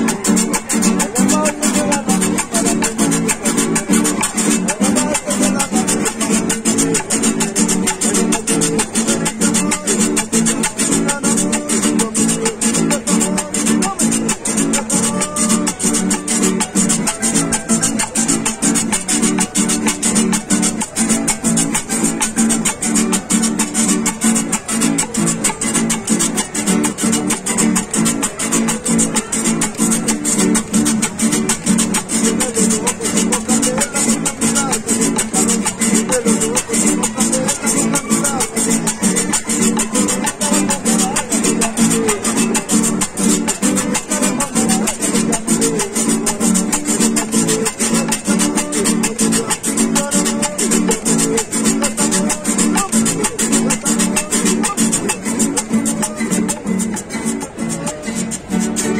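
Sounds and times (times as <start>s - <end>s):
acoustic guitars strummed: 0.0s - 58.9s.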